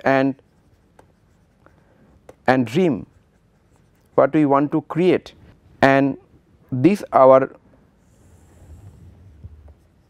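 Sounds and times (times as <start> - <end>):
stylus scratching on tablet: 0.0 - 4.6, 8.0 - 10.0.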